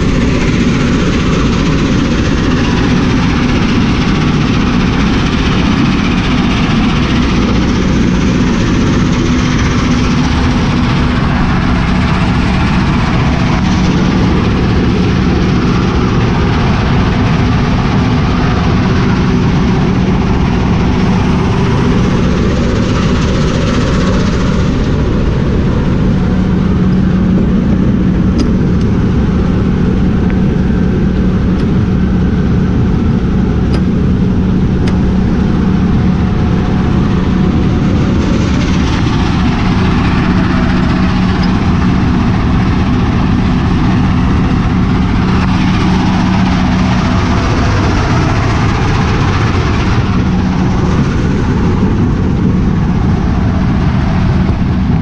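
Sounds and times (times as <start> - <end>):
heavy diesel engine running: 0.0 - 55.0.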